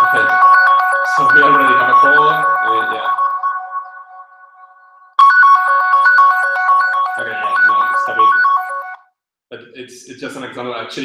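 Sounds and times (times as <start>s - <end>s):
phone ringtone melody: 0.0s - 9.1s.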